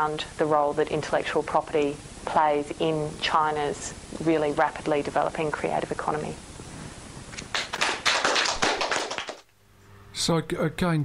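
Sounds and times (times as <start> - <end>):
applause: 7.4 - 9.5.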